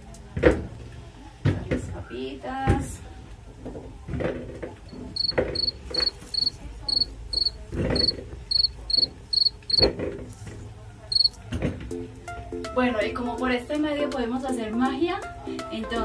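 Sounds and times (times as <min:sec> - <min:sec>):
cricket chirping: 0:05.2 - 0:09.8, 0:11.1 - 0:11.3.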